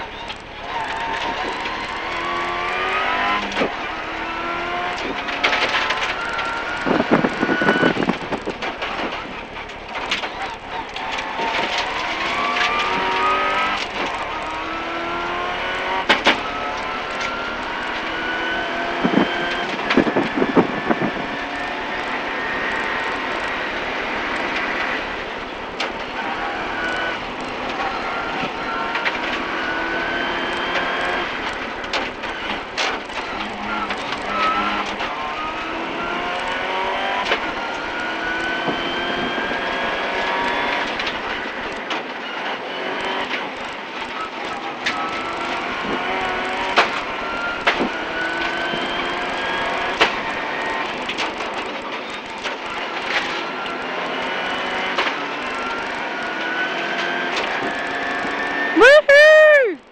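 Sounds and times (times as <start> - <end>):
car engine revving through gears: 0.0 - 59.0.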